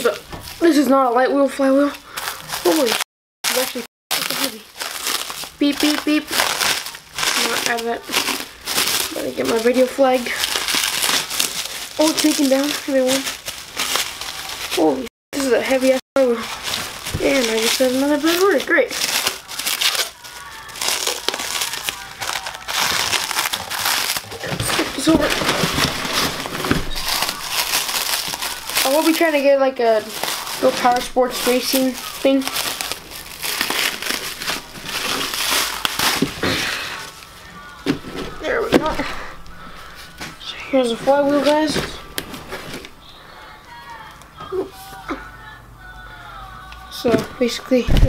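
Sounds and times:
bubble wrap crinkling: 0.0 - 1.0, 1.6 - 45.1
faint background music: 14.5 - 48.0.

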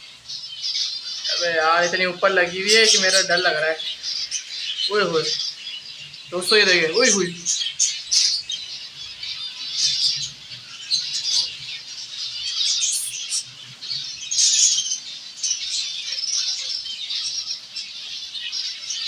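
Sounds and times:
finches chirping and calling: 0.0 - 19.0.

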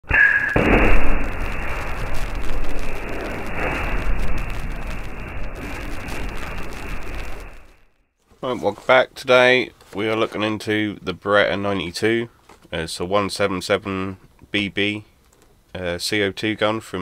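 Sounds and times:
explosion blast: 0.0 - 7.9
fireball rushing burn: 0.1 - 7.9.

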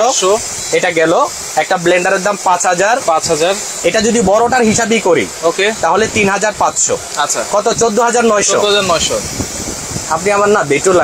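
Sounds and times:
person talking: 0.0 - 9.3, 10.0 - 11.0.

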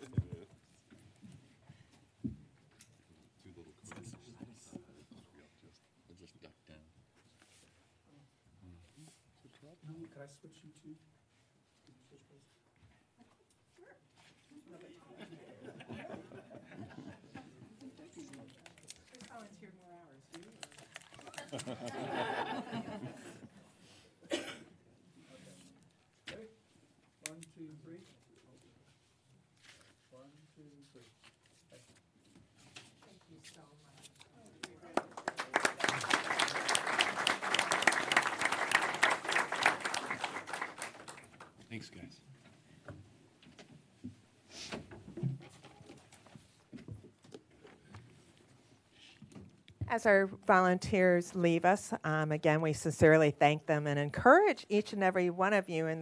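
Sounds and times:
faint room noise: 0.0 - 56.0.

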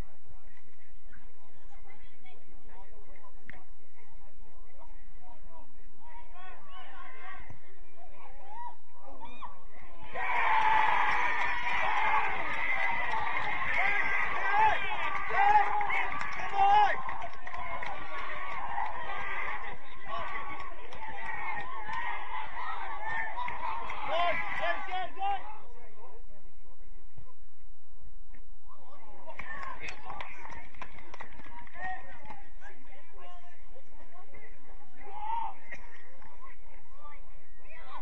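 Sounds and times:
outdoor background noise: 0.0 - 38.0
players calling out: 8.3 - 25.7
people shouting excitedly: 8.4 - 25.5.

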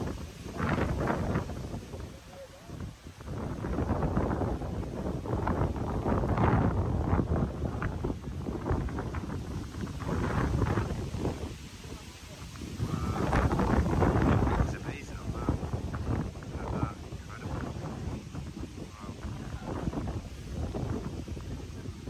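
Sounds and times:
wind buffeting microphone: 0.0 - 22.0
people talking: 1.8 - 2.8, 11.6 - 15.8, 16.5 - 20.7.

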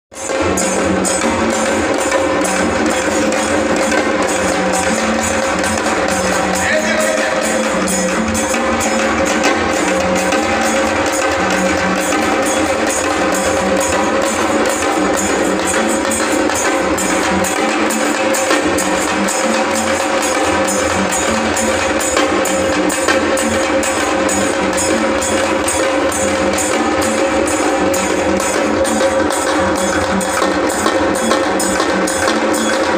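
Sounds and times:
hand drums beating: 0.1 - 32.9.

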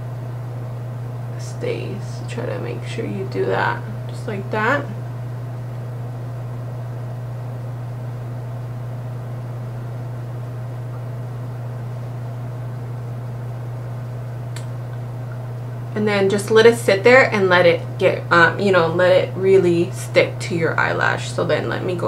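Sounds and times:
low hum with hiss: 0.0 - 22.0
faint click: 14.5 - 15.4.

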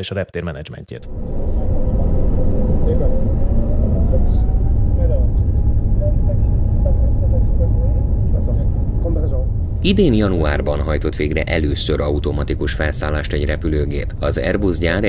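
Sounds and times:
low rumble of aircraft engines: 1.1 - 15.0.

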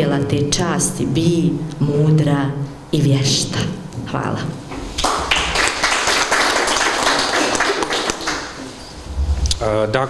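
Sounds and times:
audience applauding: 5.0 - 8.8.

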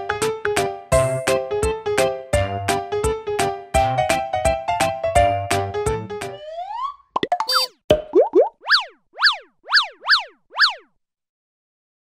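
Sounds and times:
cartoon pops: 7.2 - 10.8.

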